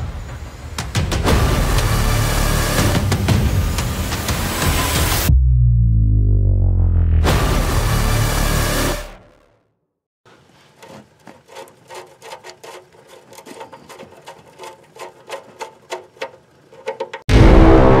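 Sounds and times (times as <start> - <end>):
loud music: 1.0 - 9.4, 17.3 - 18.0.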